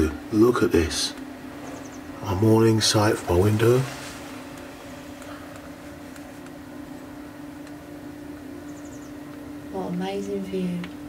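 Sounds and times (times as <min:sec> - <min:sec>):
electric fan humming: 0:00.0 - 0:11.0.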